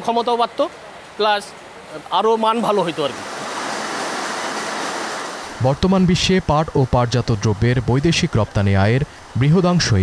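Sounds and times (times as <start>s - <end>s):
man talking: 0.0s - 3.2s, 5.6s - 10.0s.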